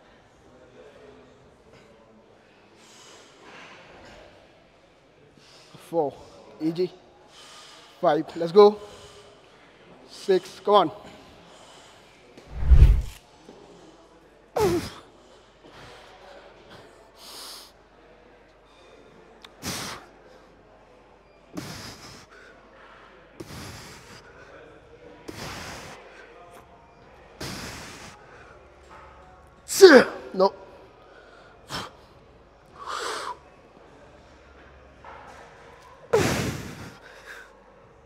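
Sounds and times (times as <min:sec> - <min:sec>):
loud low thump: 0:12.5 - 0:13.1
man exhaling forcefully: 0:12.5 - 0:13.1.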